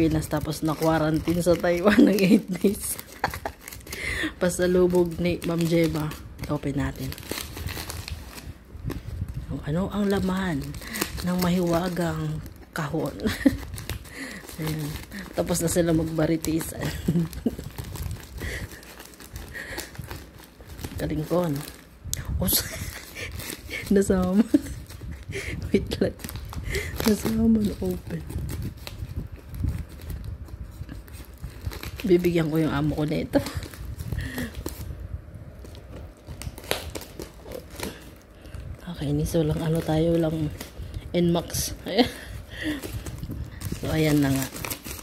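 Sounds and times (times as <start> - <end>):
scissors cutting paper package: 0.0 - 34.9, 35.6 - 45.0
paper and tape crinkling: 0.0 - 45.0.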